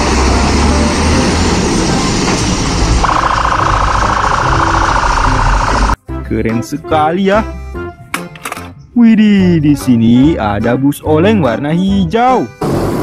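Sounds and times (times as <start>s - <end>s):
diesel engine running: 0.0s - 6.0s
pulsing siren: 2.8s - 6.0s.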